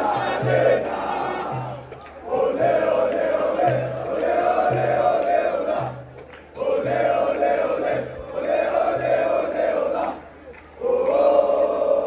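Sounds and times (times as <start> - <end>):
crowd of men chanting: 0.0 - 12.0.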